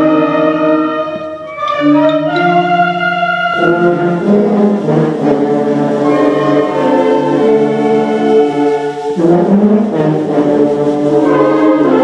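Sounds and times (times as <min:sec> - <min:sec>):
concert band playing chords: 0:00.0 - 0:10.0.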